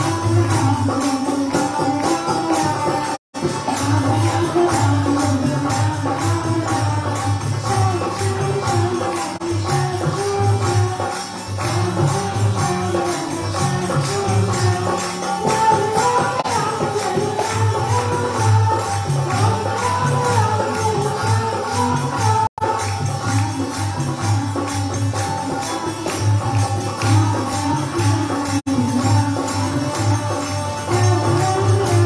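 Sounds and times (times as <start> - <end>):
harmonium melody: 0.0 - 32.0
jingling hand percussion: 0.0 - 32.0.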